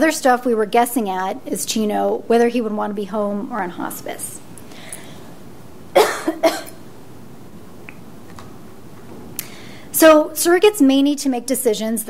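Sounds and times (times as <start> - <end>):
room hum: 0.0 - 12.0.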